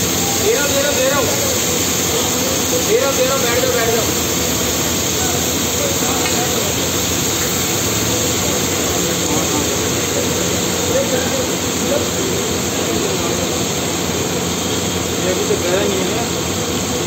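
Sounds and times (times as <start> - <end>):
gas burner roaring: 0.0 - 17.0
onions frying: 0.0 - 17.0.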